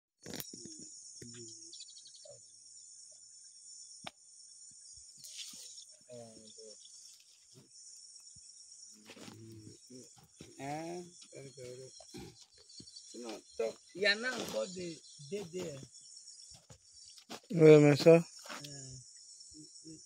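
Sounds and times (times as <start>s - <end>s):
insects chirring: 0.2s - 20.0s.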